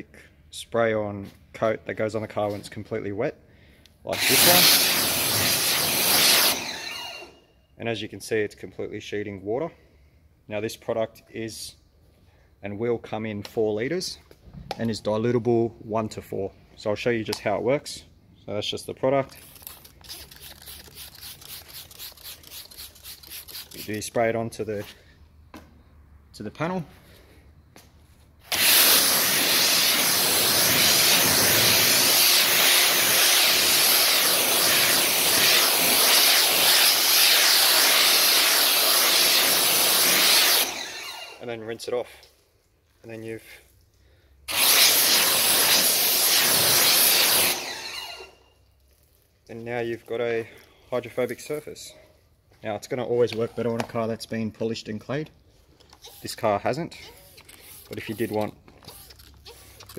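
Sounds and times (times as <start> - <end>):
spray bottle hissing: 4.3 - 6.6, 19.4 - 24.0, 28.5 - 40.7, 44.5 - 48.2, 57.2 - 59.9.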